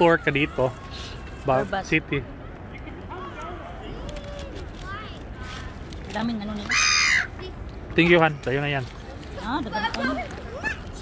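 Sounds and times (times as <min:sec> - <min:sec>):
gulls calling: 0:06.5 - 0:07.6.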